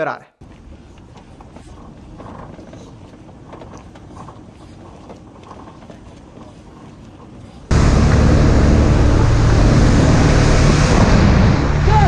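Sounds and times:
light aircraft piston engine: 7.5 - 11.8.

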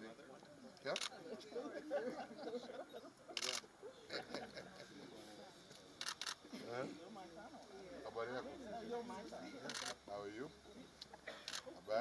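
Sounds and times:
group of people talking: 0.0 - 12.0
camera shutter clicks: 0.8 - 1.1, 3.4 - 3.7, 6.0 - 6.4, 9.7 - 10.0, 11.4 - 11.7.

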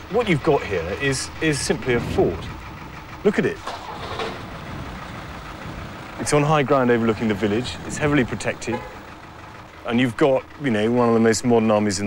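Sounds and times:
street noise hiss: 0.0 - 12.0
vehicle engine running: 0.0 - 12.0.

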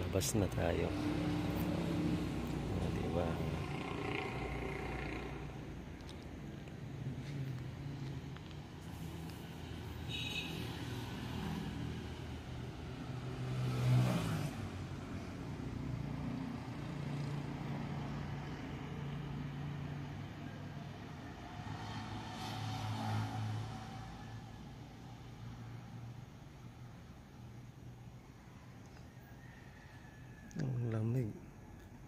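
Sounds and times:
vehicle engine hum: 0.0 - 28.2.

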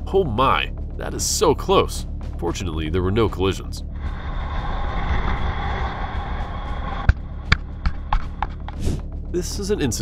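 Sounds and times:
road noise: 3.8 - 8.8
wind rush: 3.8 - 9.0.

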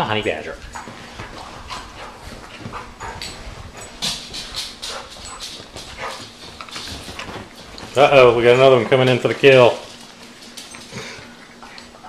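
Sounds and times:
dogs scuffling and mouthing: 0.3 - 12.0.

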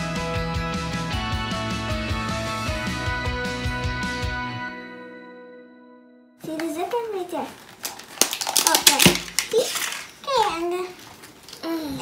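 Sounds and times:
plastic ball crinkling and clicking: 6.4 - 11.7.

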